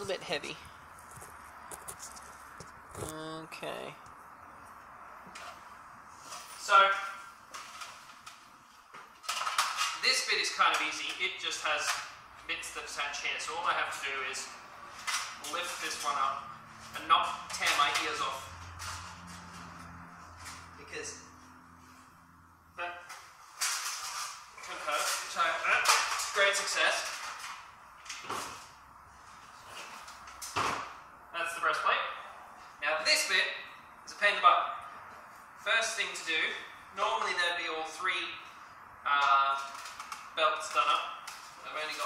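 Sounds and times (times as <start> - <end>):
person speaking: 0.0 - 0.8, 3.0 - 4.0.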